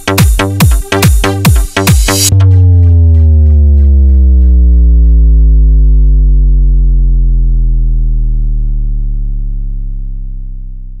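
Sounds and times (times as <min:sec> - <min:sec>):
deep synth bass note sliding down: 0:02.2 - 0:11.0.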